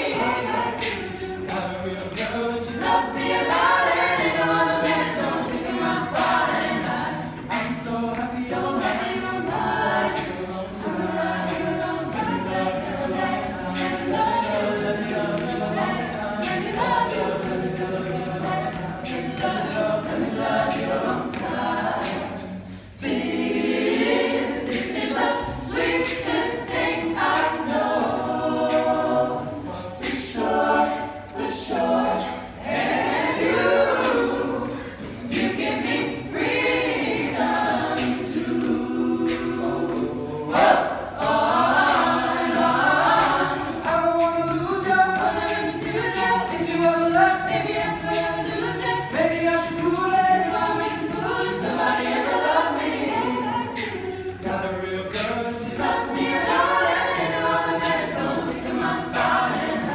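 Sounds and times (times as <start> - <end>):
a cappella group singing: 0.0 - 59.9.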